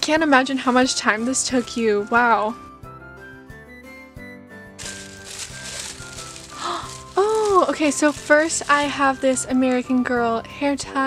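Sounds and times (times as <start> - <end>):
soft background music: 0.0 - 11.0
tissue paper crinkling: 4.8 - 9.4.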